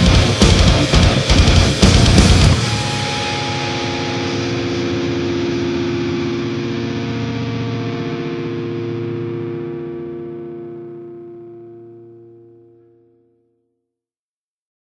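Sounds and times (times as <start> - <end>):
distorted electric guitar chord ringing: 0.0 - 13.4.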